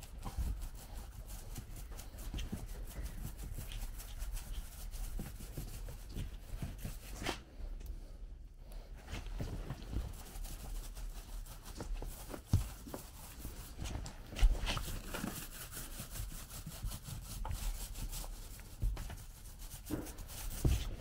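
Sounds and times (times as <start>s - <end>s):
paint roller rubbing: 0.0s - 7.3s, 9.6s - 21.0s.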